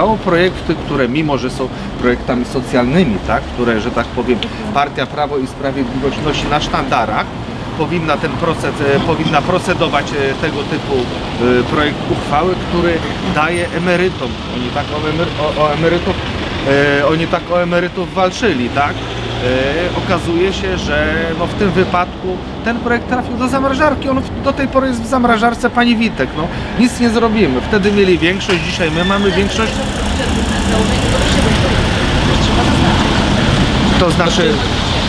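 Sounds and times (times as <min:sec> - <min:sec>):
street traffic hum: 0:00.0 - 0:35.0
person speaking: 0:02.6 - 0:34.8.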